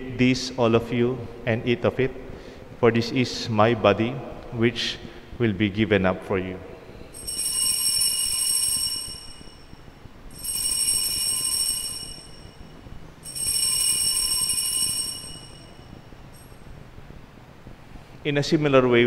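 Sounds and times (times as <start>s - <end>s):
altar bells ringing: 7.2s - 16.7s.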